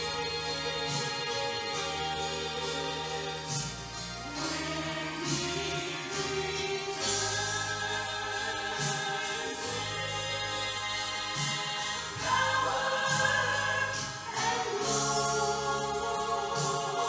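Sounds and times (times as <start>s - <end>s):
instrumental accompaniment: 0.0s - 17.0s
woman singing a gospel hymn: 0.0s - 17.0s.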